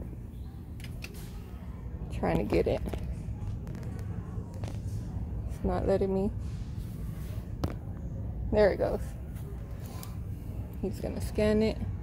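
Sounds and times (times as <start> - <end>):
store background hum: 0.0 - 12.0.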